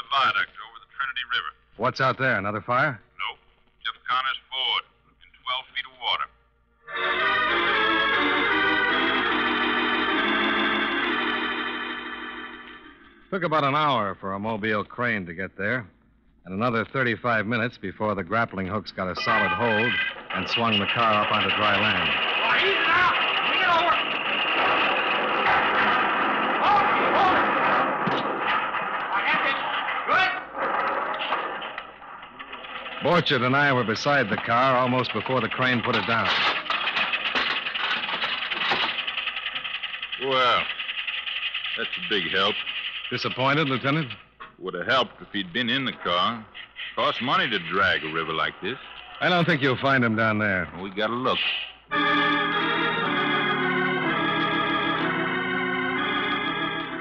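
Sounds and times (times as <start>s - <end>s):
organ chords: 6.7s - 13.4s, 19.0s - 29.7s, 51.9s - 57.0s.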